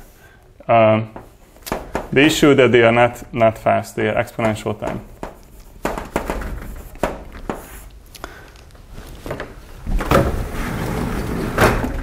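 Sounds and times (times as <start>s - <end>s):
chalk tapping on chalkboard: 5.1s - 7.8s.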